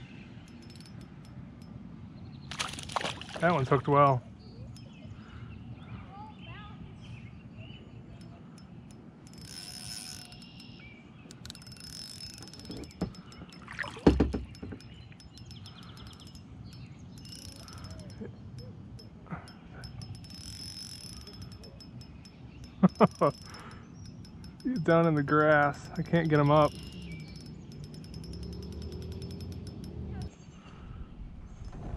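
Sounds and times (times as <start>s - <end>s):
fishing reel ticking: 0.4s - 1.8s, 8.1s - 30.3s
sharp knocks: 12.6s - 14.9s.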